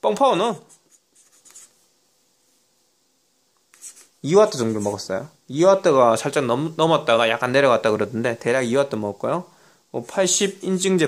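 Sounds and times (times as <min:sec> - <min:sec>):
felt-tip marker writing on paper: 0:00.7 - 0:01.7.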